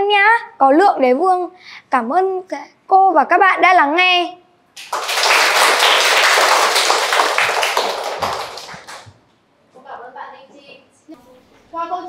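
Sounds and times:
children applauding: 0:04.8 - 0:09.1.

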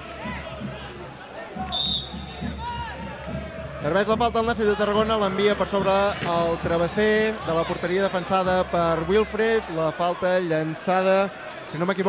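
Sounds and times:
referee's whistle blast: 0:01.6 - 0:02.5.

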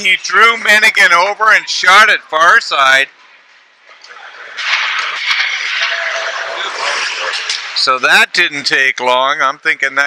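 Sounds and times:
crowd and rink noise: 0:00.0 - 0:10.0.

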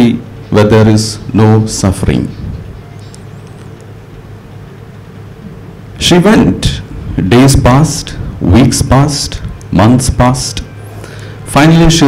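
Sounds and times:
low hum of room tone: 0:00.0 - 0:12.0.

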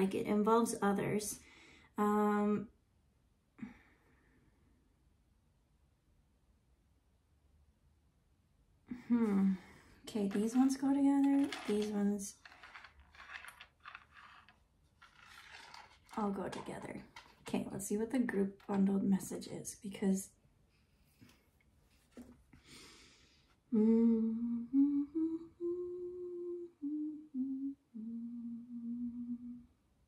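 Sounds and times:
woman humming quietly: 0:08.9 - 0:09.8, 0:23.7 - 0:29.8
metal charms scraping on wood: 0:10.1 - 0:17.5.

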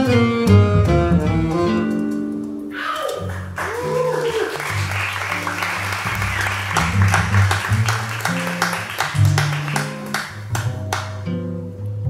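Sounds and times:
audience applause: 0:03.0 - 0:11.2
double bass walking line: 0:05.8 - 0:11.3.

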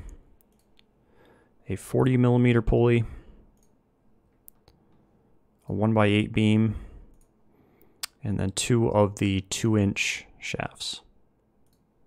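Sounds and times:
computer mouse clicking: 0:00.4 - 0:00.9, 0:11.6 - 0:11.9.

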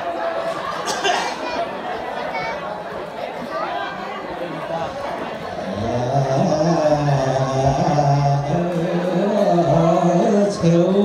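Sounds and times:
man singing long notes: 0:05.6 - 0:11.0.

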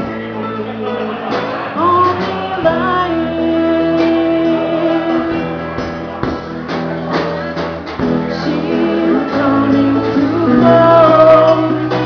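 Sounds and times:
person singing: 0:00.0 - 0:05.8, 0:08.0 - 0:12.0
ukulele strumming: 0:00.0 - 0:12.0.

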